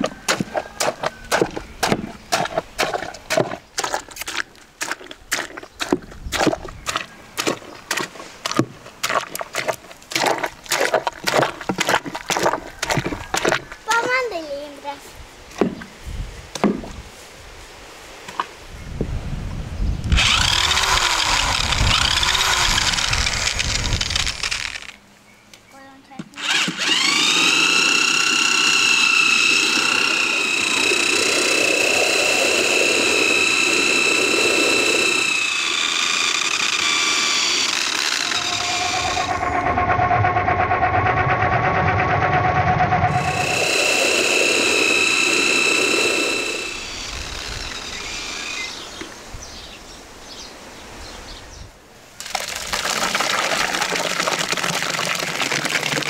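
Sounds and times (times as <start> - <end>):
pulp pouring into basin: 2.4 - 13.6, 52.2 - 56.0
electric drill whining: 20.1 - 25.0, 26.4 - 49.1.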